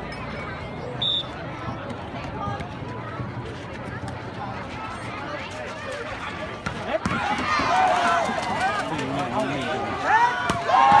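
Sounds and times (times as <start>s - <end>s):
crowd chatter: 0.0s - 11.0s
spectators talking: 0.0s - 11.0s.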